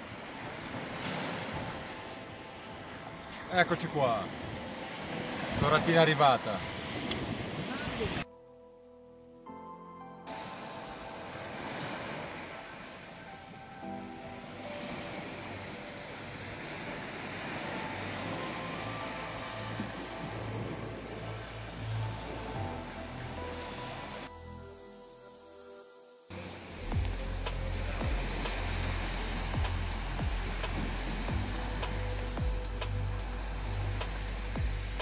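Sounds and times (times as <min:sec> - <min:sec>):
small waves washing onto beach: 0:00.0 - 0:08.2, 0:10.3 - 0:24.3, 0:26.3 - 0:35.0
soft background music: 0:00.0 - 0:35.0.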